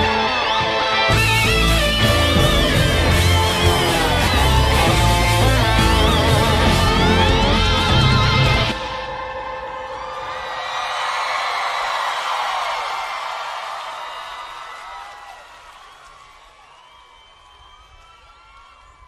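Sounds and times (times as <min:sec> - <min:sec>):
crowd cheering and whooping: 0:00.0 - 0:19.0
individual whoops and shouts: 0:09.8 - 0:19.0.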